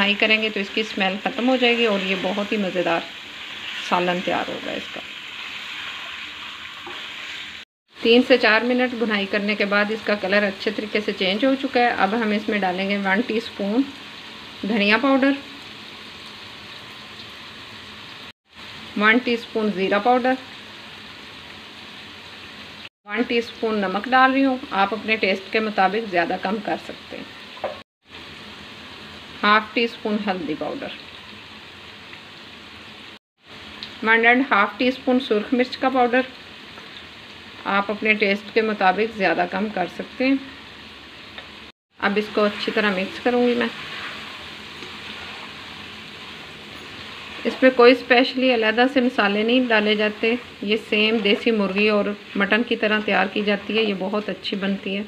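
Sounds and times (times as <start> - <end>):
meat sizzling in a wok: 0.0 - 55.0.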